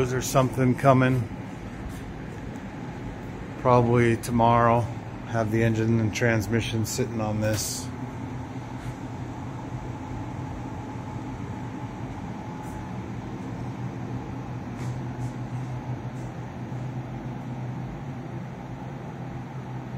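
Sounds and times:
low mechanical hum: 0:00.0 - 0:19.9.

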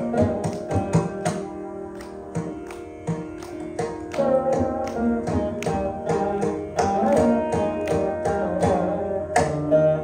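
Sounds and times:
mridangam drum strokes: 0:00.0 - 0:10.0
plucked veena notes: 0:00.0 - 0:10.0.

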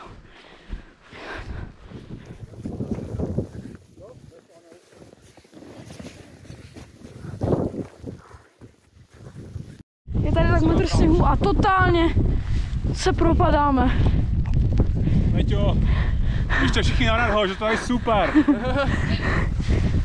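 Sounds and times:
footsteps crunching in wet snow: 0:00.0 - 0:09.8.

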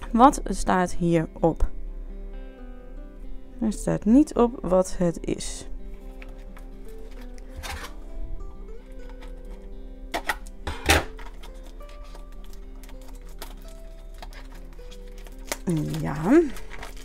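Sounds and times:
soft background music: 0:00.0 - 0:17.0
cellophane wrap crackling: 0:11.1 - 0:17.0.

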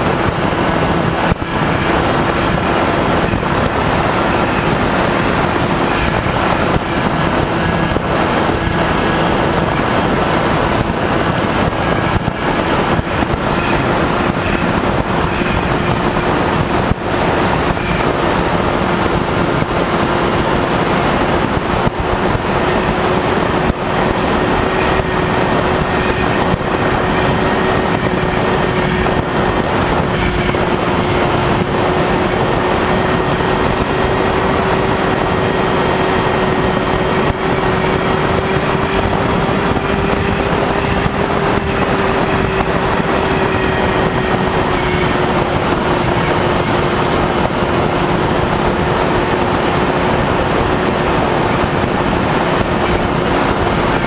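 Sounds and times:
electric motor and propeller humming: 0:00.0 - 0:54.0
wind rush on microphone: 0:00.0 - 0:54.0.

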